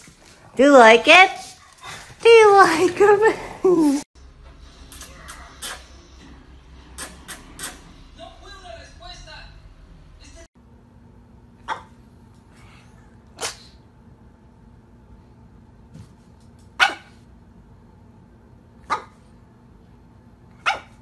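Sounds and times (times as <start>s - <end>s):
dog barking in its sleep: 16.8s - 17.2s, 20.6s - 21.0s.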